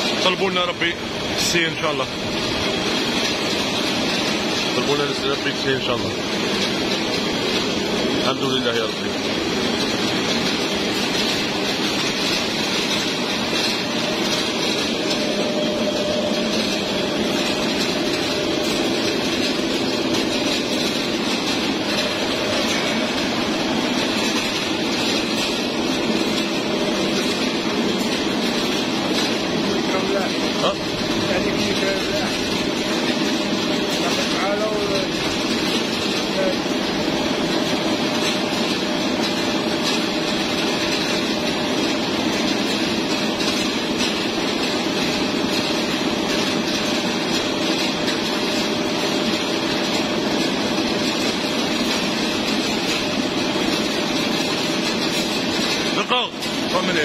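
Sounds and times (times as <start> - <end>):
machinery humming: 0.0 - 57.0.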